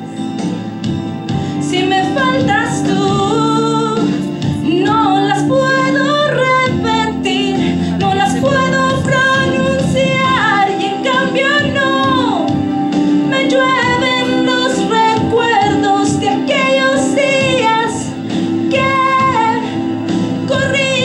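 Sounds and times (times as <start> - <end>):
instrumental accompaniment: 0.0 - 21.0
woman singing into microphone: 1.4 - 21.0.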